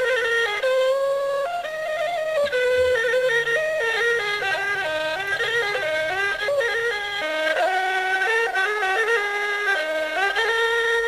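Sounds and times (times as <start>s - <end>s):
wind instrument ornamented melody: 0.0s - 11.0s.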